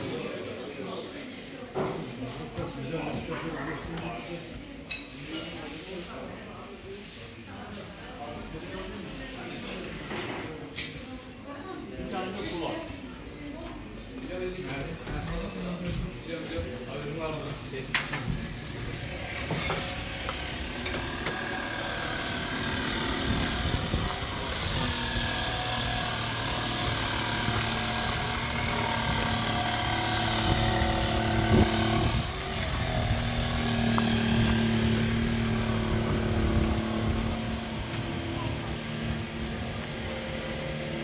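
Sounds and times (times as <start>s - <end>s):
faint background voices: 0.0s - 41.0s
engine running: 18.1s - 41.0s.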